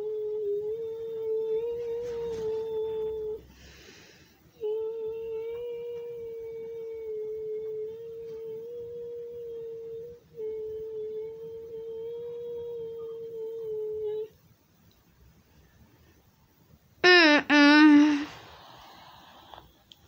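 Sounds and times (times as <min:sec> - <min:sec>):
person humming held notes: 0:00.0 - 0:03.6, 0:04.5 - 0:14.4, 0:17.0 - 0:19.5.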